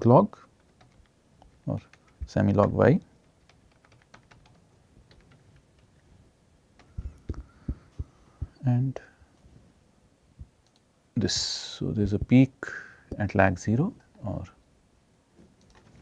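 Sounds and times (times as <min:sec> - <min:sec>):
keyboard typing: 0:00.6 - 0:05.9, 0:15.6 - 0:16.0.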